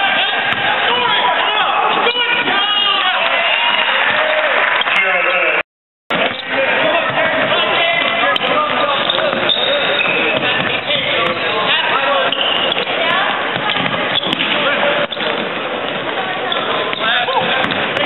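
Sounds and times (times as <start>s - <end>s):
hubbub of crowd voices: 0.0s - 18.0s
basketball dribbling on wood floor: 17.4s - 18.0s.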